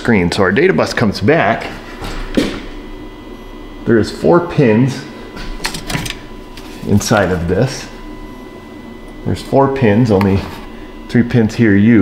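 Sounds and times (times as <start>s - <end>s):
faint steady hum: 0.0s - 12.0s
man's voice: 3.9s - 5.2s, 6.8s - 8.0s.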